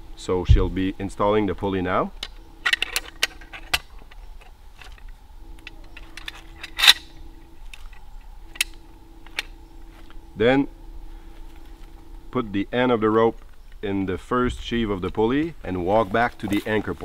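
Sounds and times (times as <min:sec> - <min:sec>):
faint steady hum: 0:00.0 - 0:17.0
metal hardware clinking: 0:02.2 - 0:09.5.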